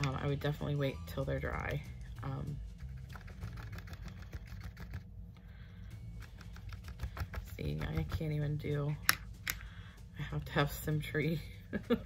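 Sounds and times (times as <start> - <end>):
paintbrush dabbing paint on paper: 2.2 - 5.0.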